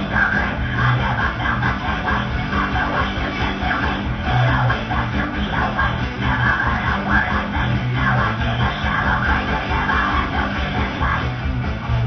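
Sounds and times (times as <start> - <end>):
black metal music: 0.0 - 12.0.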